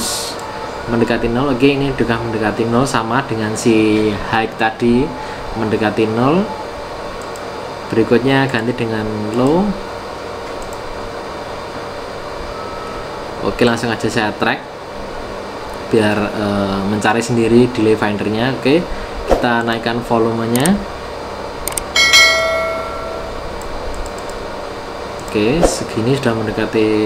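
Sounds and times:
bright bell ding: 22.0 - 23.6.

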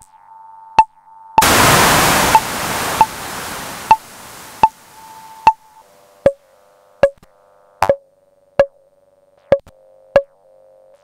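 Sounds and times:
burst of white noise: 1.4 - 5.6.

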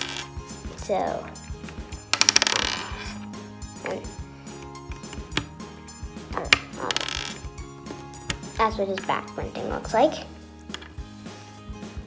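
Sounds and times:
plastic pieces clattering on wood: 2.0 - 3.2, 6.4 - 7.5.

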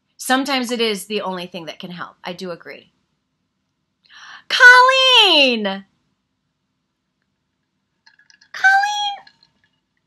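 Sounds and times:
woman squealing: 8.6 - 9.3.

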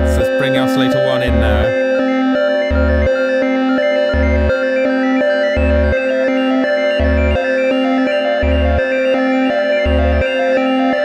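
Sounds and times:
synthesizer sequenced pattern: 0.0 - 11.0.

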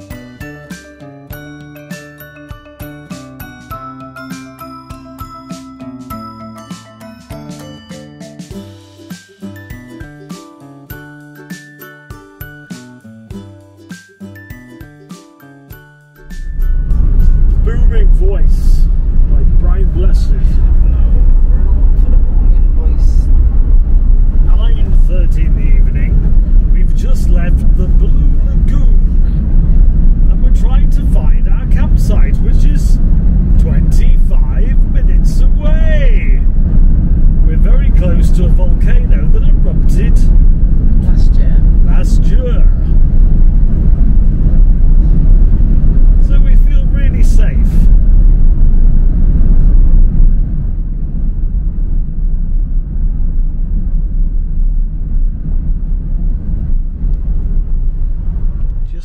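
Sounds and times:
road and engine rumble: 0.0 - 59.0.

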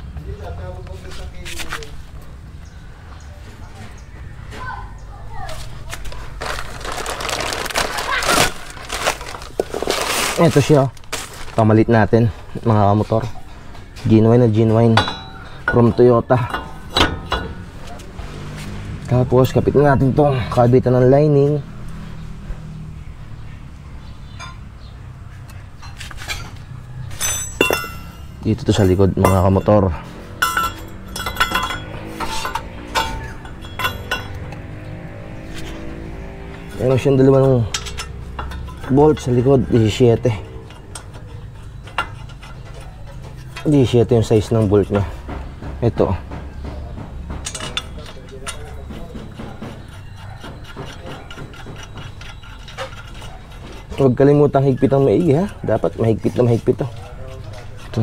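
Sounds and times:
metal bolt clicking and scraping: 14.6 - 20.2, 25.4 - 45.0, 47.4 - 58.0
light metallic clinks and taps: 24.3 - 24.8, 27.2 - 34.9, 37.6 - 45.8, 46.4 - 53.8.

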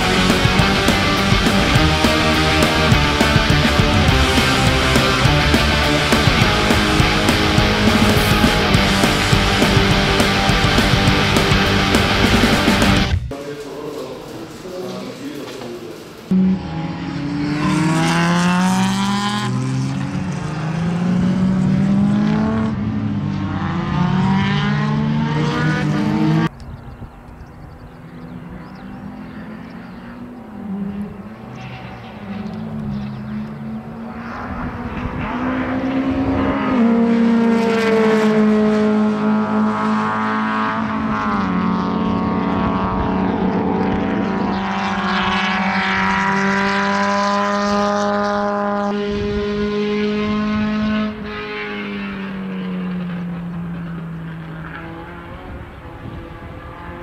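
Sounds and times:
race car engine shifting gears: 0.0 - 13.4, 27.2 - 57.0.

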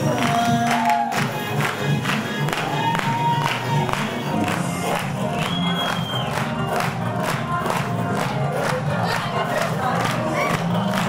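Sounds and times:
music: 0.0 - 11.0
people clapping in rhythm: 0.0 - 11.0
people shouting and cheering: 0.0 - 11.0.

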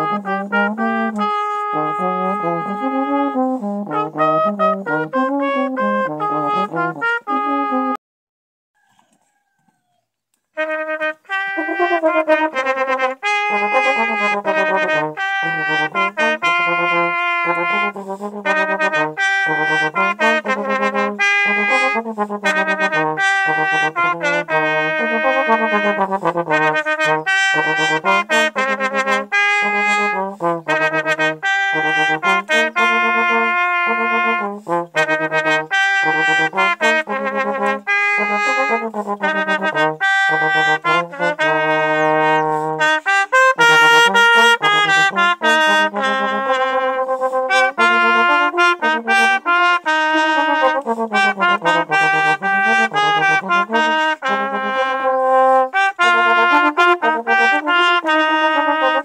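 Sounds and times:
trombone and trumpet duet: 0.0 - 8.0, 10.6 - 59.0.

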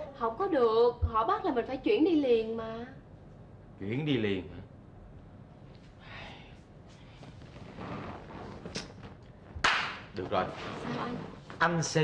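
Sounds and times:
quiet room noise: 0.0 - 12.0
hand slap: 9.6 - 10.1.

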